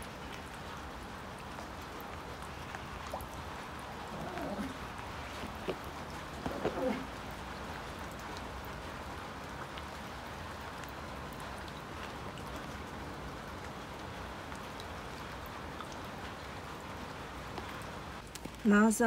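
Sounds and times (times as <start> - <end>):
light rain on pond water: 0.0 - 19.0.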